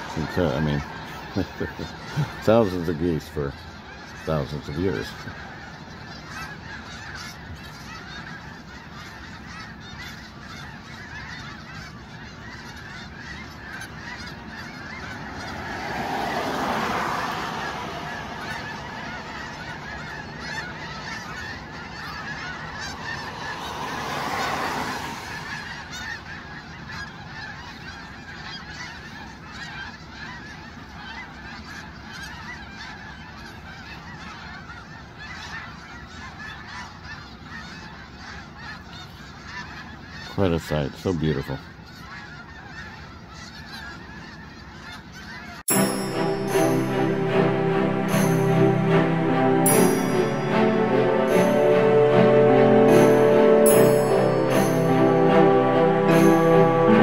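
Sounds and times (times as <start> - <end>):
geese honking: 0.0 - 57.0
broad rushing noise: 15.1 - 20.4.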